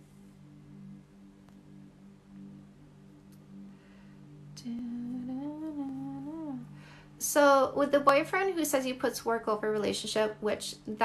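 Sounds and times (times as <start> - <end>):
faint low background tone: 0.0 - 11.0
woman humming: 4.6 - 6.8.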